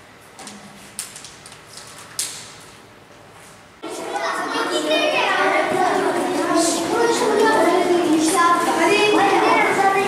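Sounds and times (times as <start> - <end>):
children chattering: 3.8 - 10.0.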